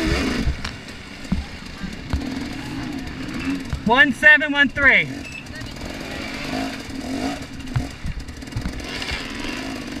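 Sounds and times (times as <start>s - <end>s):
dirt bike engine at low revs: 0.0s - 10.0s.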